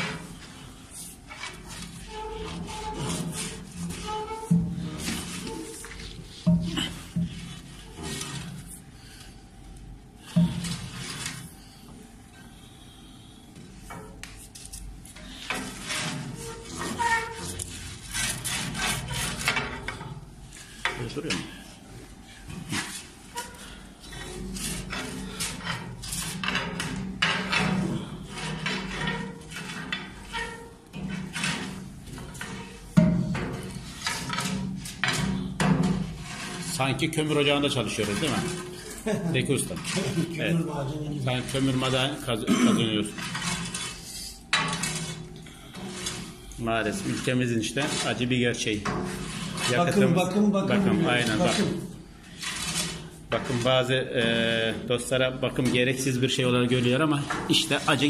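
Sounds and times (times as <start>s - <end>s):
metal scraper scraping soot: 0.0s - 9.2s, 10.2s - 11.7s, 13.9s - 21.4s, 22.5s - 42.2s, 42.8s - 54.9s, 55.6s - 58.0s.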